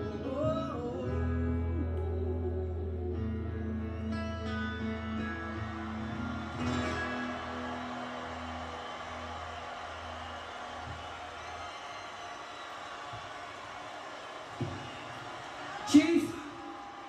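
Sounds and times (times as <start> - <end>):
crowd noise: 3.0 - 17.0.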